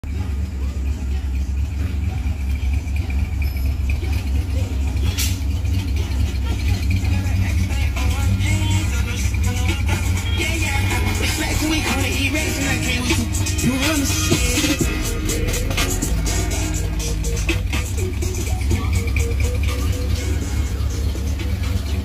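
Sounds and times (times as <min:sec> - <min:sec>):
car engine idling: 0:00.0 - 0:22.0
music playing: 0:00.0 - 0:22.0
person singing: 0:00.0 - 0:22.0.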